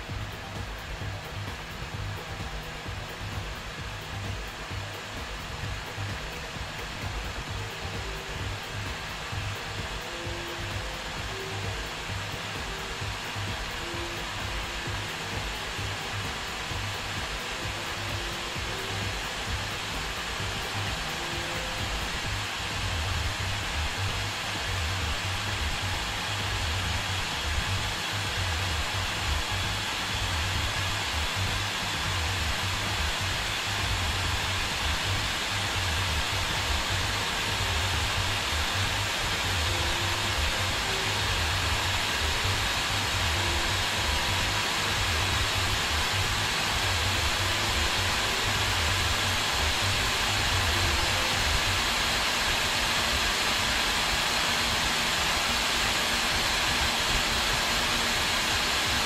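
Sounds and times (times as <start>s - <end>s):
cooling fan rushing: 0.0s - 59.0s.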